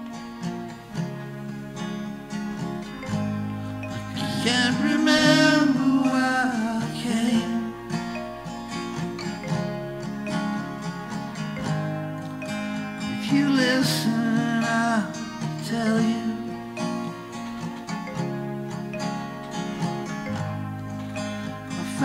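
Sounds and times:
acoustic guitar strumming: 0.0s - 22.0s
sliding guitar notes: 0.0s - 22.0s.

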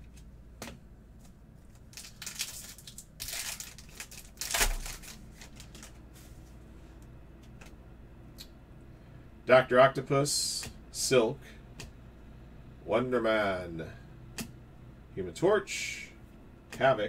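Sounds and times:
foil wrapper tearing and crinkling: 1.8s - 6.0s.

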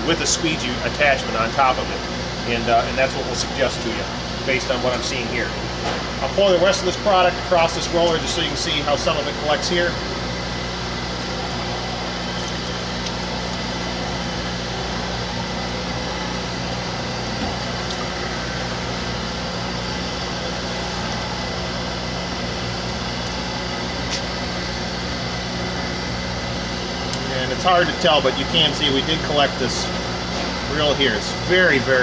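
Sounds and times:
electric motor humming: 0.0s - 32.0s.

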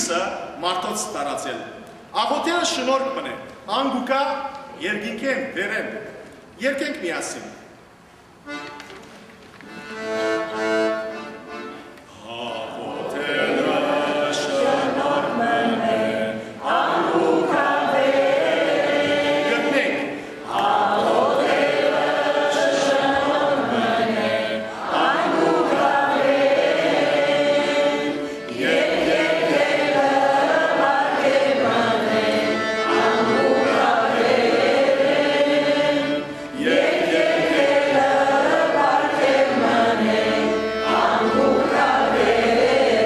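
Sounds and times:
voices singing a church hymn: 9.8s - 43.0s.

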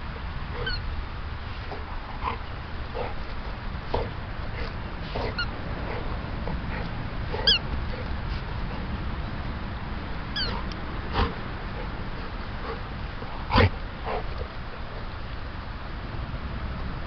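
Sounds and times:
steady low rumble: 0.0s - 17.0s
dog whining: 0.6s - 0.8s, 7.4s - 7.6s, 10.4s - 10.6s.

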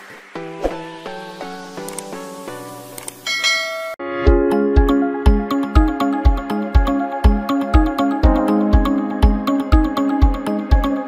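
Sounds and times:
chiming bell-like jingle: 3.3s - 4.0s.

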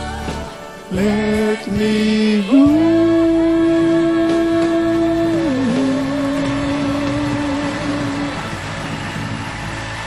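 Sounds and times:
noisy background: 0.0s - 10.0s.

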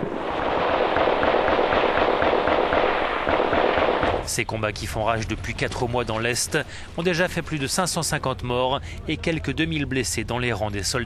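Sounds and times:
small-arms gunfire crackle: 0.0s - 4.3s.

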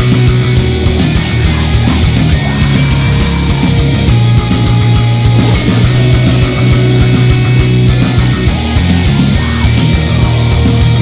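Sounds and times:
doom metal music: 0.0s - 11.0s.

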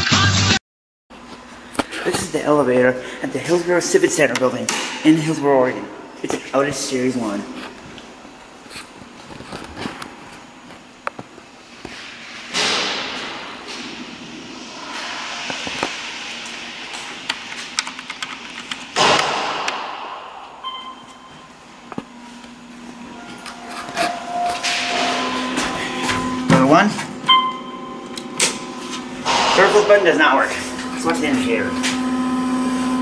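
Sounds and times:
electronic chime tone: 20.6s - 21.5s, 27.3s - 28.1s.

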